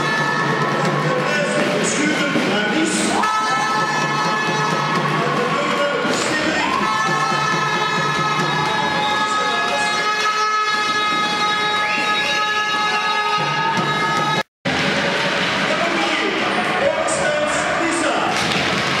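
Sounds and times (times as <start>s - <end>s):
crowd noise: 0.0s - 19.0s
air horns blowing: 3.2s - 5.5s, 6.6s - 15.8s.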